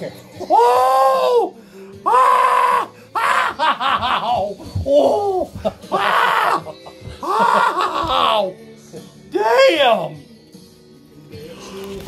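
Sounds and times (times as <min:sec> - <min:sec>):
man screaming in pain: 0:00.5 - 0:08.5.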